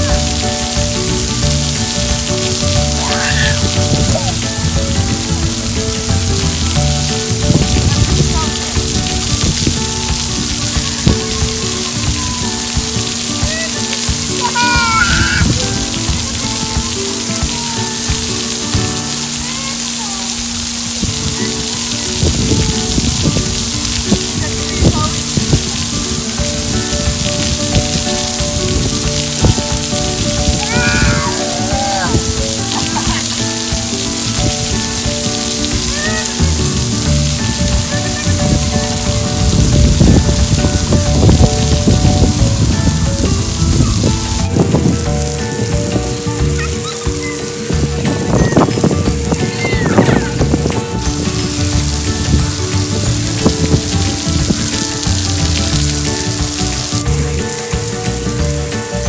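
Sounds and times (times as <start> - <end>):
background music: 0.0 - 59.0
water jets spraying and pattering: 0.0 - 59.0.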